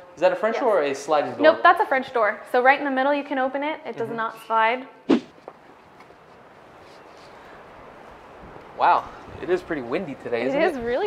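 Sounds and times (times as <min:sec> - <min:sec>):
wind blowing: 0:05.1 - 0:11.0.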